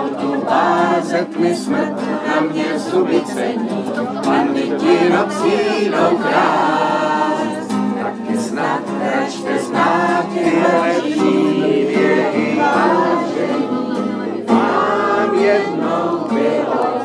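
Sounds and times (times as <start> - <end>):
voices singing together: 0.0 - 17.0.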